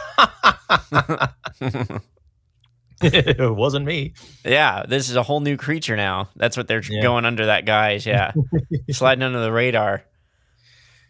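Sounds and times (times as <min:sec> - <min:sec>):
person chuckling: 0:00.0 - 0:02.1, 0:08.1 - 0:09.0.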